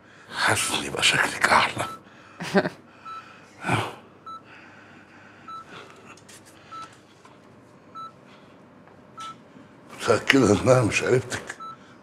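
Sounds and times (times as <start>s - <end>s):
heart monitor beeping: 3.0s - 3.3s, 4.2s - 4.5s, 5.5s - 5.8s, 6.7s - 7.0s, 7.9s - 8.2s, 9.2s - 9.4s, 11.6s - 11.8s.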